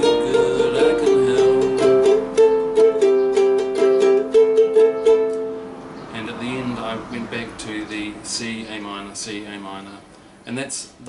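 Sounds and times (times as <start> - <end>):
ukulele strummed chords: 0.0 - 5.7.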